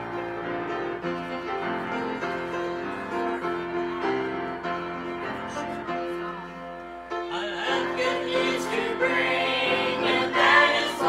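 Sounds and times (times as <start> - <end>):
piano playing slow chords: 0.0 - 11.0.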